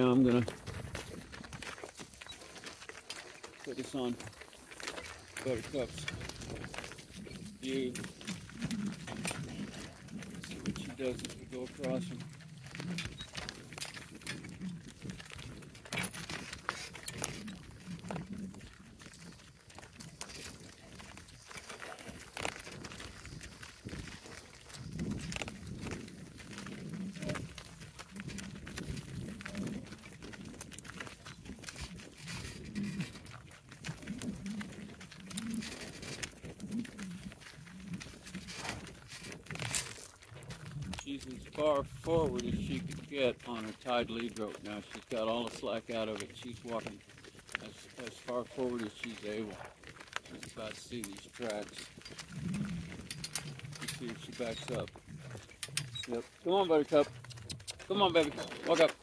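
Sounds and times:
hoof steps crunching on gravel: 0.0s - 59.0s.

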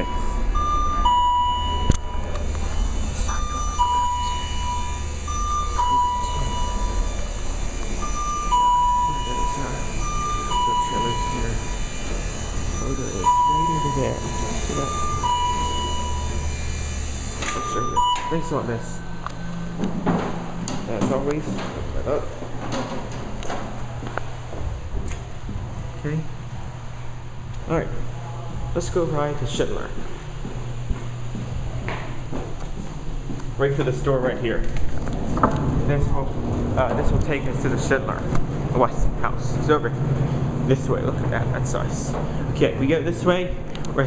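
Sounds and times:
high-low warning beep: 0.0s - 19.8s
lift motor humming: 0.0s - 38.7s
footsteps: 19.2s - 25.9s, 29.6s - 35.8s.

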